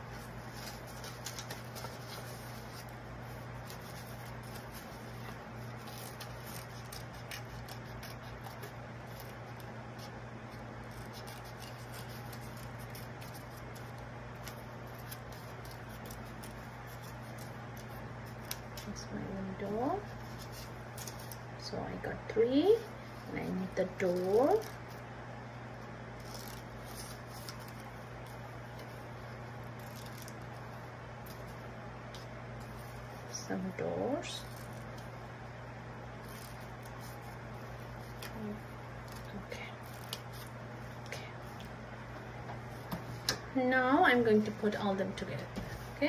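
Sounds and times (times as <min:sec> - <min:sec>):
paper rustling: 0:00.0 - 0:19.0, 0:26.2 - 0:33.3
steady low hum: 0:00.0 - 0:46.0
scissors snipping paper: 0:00.4 - 0:19.0, 0:23.4 - 0:25.0, 0:26.2 - 0:29.0, 0:29.6 - 0:30.4.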